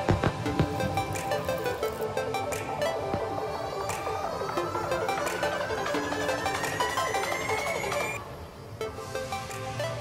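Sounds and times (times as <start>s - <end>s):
melodic background music: 0.0s - 10.0s.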